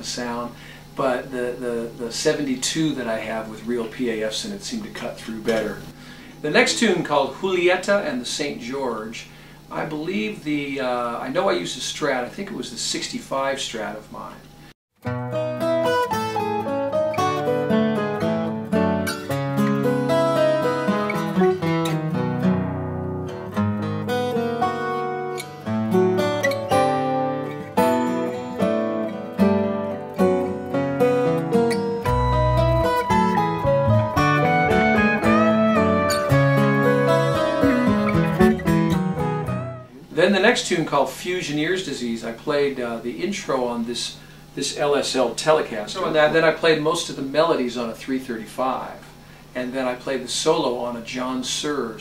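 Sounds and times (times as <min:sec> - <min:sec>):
electric guitar melody: 0:15.0 - 0:40.0
band accompaniment: 0:32.1 - 0:39.8
bass line: 0:32.1 - 0:40.0.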